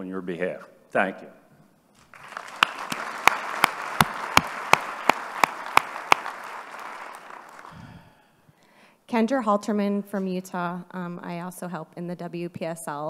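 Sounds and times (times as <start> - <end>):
audience applauding: 2.0 - 8.1
loud close claps: 2.0 - 8.1.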